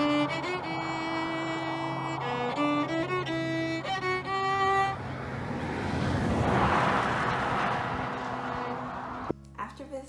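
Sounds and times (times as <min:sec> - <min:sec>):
solo violin held notes: 0:00.0 - 0:05.0
rushing noise: 0:00.0 - 0:09.3.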